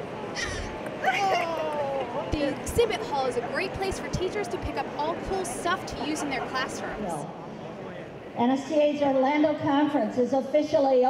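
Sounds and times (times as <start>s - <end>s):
voices: 0.4s - 11.0s
woman exclaiming oh: 1.0s - 2.1s.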